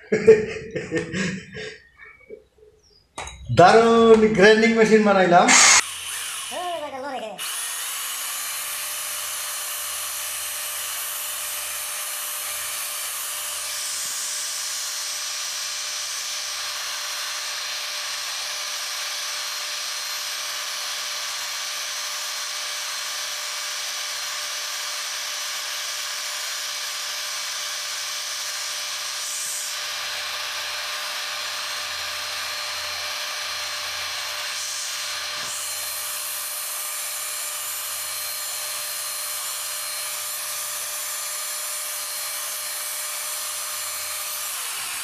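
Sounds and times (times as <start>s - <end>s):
cordless drill grinding metal: 3.2s - 45.0s.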